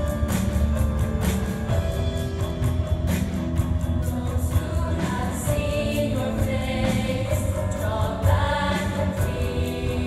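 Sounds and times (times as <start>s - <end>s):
low instrumental accompaniment: 0.0s - 10.0s
choir singing held chords: 4.1s - 10.0s.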